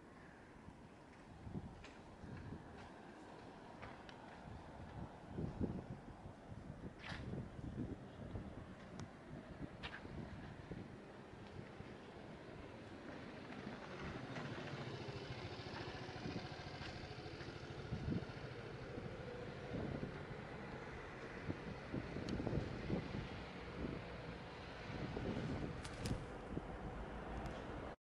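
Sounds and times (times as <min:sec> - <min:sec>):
motor traffic rumble: 0:00.0 - 0:28.0.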